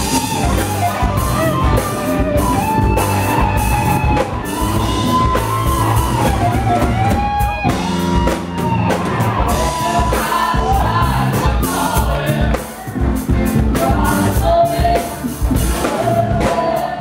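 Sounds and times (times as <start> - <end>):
bass guitar: 0.0 - 17.0
drums: 0.0 - 17.0
electric guitars: 0.0 - 17.0
person singing: 9.4 - 13.0.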